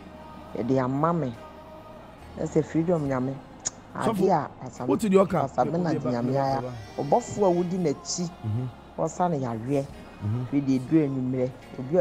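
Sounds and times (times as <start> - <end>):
man speaking into a microphone: 4.9 - 6.1, 8.4 - 8.7.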